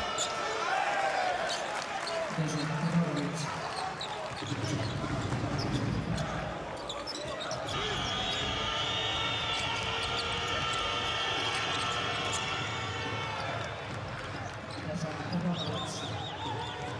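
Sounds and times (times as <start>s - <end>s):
crowd noise: 0.0s - 16.9s
shoe squeaks on hardwood court: 3.2s - 7.8s.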